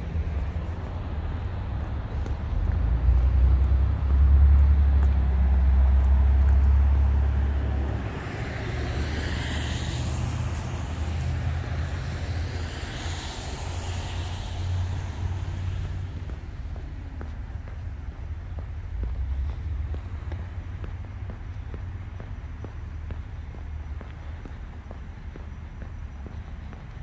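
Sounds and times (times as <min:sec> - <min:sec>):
low traffic rumble: 0:00.0 - 0:27.0
tyres hissing on wet road: 0:00.0 - 0:27.0.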